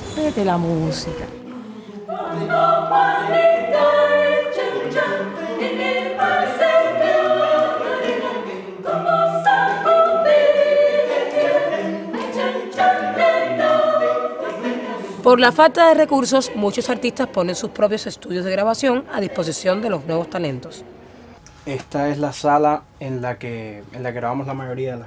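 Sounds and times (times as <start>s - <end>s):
mixed choir singing: 0.6s - 21.2s.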